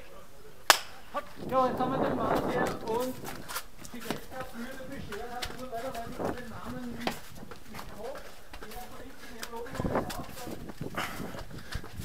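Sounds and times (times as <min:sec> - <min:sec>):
voices in background: 0:00.0 - 0:11.8
footsteps on concrete stairs: 0:01.2 - 0:12.0.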